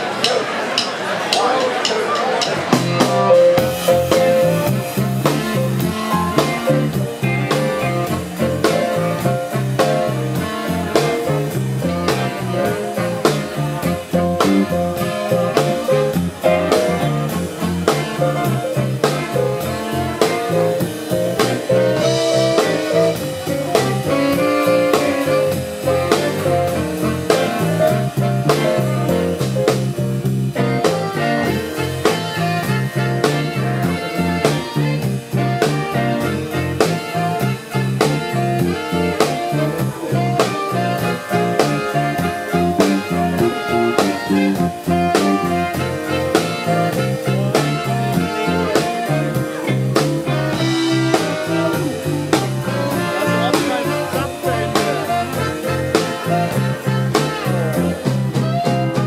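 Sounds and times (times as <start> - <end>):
drum kit beat: 0.0 - 59.0
trumpet: 0.0 - 59.0
electric guitar: 2.6 - 59.0
saxophone: 2.8 - 59.0.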